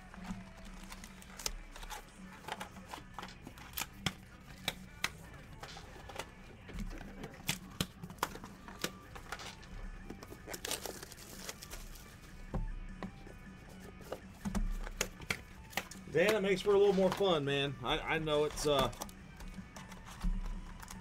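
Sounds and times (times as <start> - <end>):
packaging crinkling: 10.3 - 12.0.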